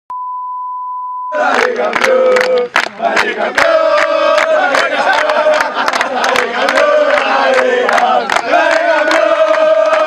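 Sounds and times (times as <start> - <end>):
test-tone beep: 0.1 - 1.4
men shouting in celebration: 1.3 - 10.0
hand claps: 1.4 - 10.0.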